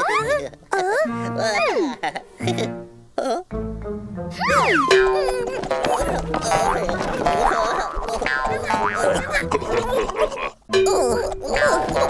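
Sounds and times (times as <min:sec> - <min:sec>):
lively background music: 0:00.0 - 0:07.3, 0:08.4 - 0:10.0
springy cartoon boings: 0:04.4 - 0:09.2.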